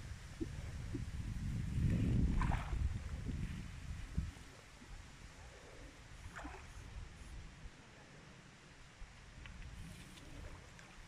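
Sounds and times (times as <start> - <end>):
wind rumble on microphone: 0.0 - 7.8, 9.0 - 11.0.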